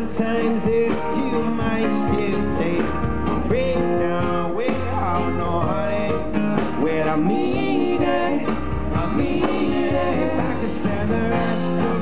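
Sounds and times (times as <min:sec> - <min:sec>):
live reggae band playing: 0:00.0 - 0:12.0.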